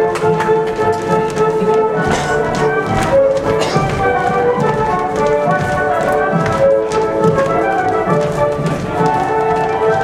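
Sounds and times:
folk dance music: 0.0 - 10.0
shoes tapping and stamping on stage: 0.0 - 10.0.

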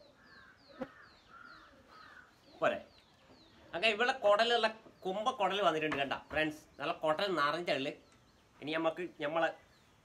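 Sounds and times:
harsh low bird calls: 0.0 - 10.0
high falling bird chirp: 0.0 - 10.0.

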